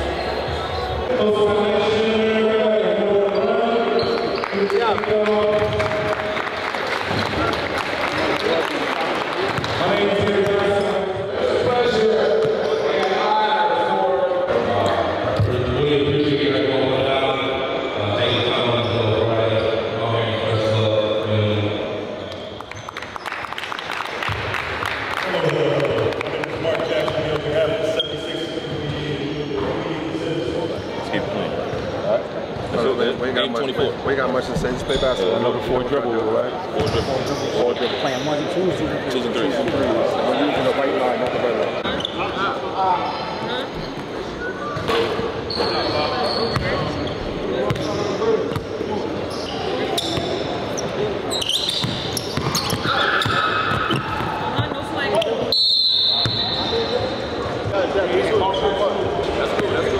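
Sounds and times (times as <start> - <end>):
people talking: 0.0 - 5.9, 7.3 - 21.8, 25.2 - 51.5, 56.2 - 59.9
crowd voices in hall: 0.0 - 59.9
basketballs bouncing on court: 9.4 - 10.6, 24.2 - 24.6, 47.6 - 48.8, 51.7 - 54.8.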